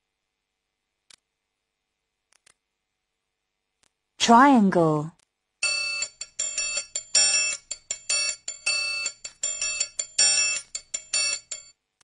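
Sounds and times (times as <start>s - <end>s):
metal triangle strikes: 5.6s - 11.7s.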